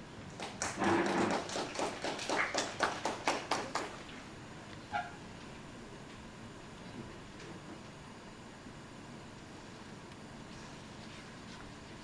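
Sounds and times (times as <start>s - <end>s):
audience applause: 0.4s - 4.0s.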